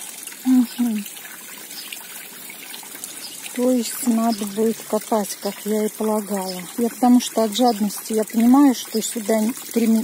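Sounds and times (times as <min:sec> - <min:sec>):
water splashing into pond: 0:00.0 - 0:10.0
water trickling down rocks: 0:00.0 - 0:10.0.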